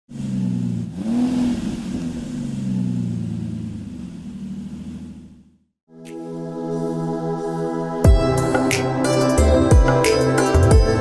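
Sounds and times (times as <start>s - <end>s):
car engine revving: 0.1s - 5.7s.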